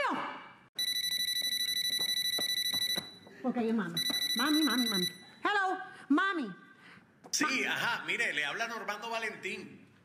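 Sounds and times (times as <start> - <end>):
cellphone ringing trill: 0.8 - 3.3, 4.0 - 5.4.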